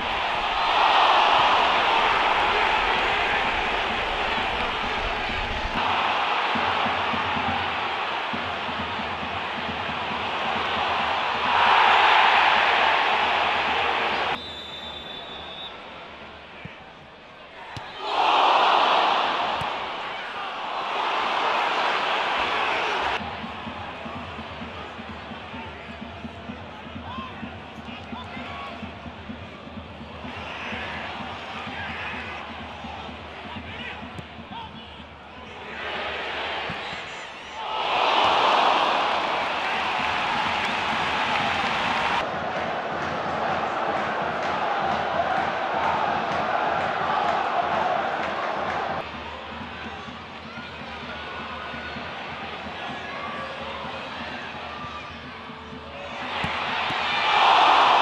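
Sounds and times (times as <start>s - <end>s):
stadium crowd roaring: 0.0s - 58.0s.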